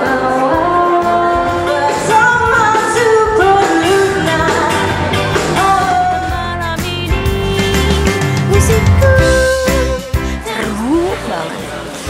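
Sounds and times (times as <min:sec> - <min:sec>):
band playing: 0:00.0 - 0:12.0
woman singing pop song: 0:00.0 - 0:12.0.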